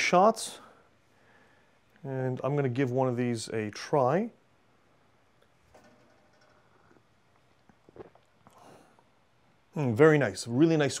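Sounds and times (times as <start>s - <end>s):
person sipping espresso: 6.5s - 9.1s.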